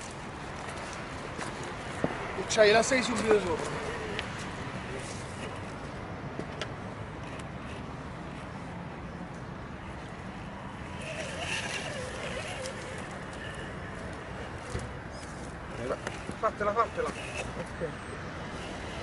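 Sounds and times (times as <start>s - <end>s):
electric motor hum: 10.8s - 17.7s.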